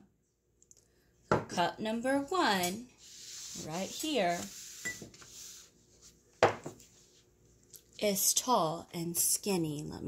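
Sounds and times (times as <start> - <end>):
object knocking on wooden table: 6.4 - 6.8.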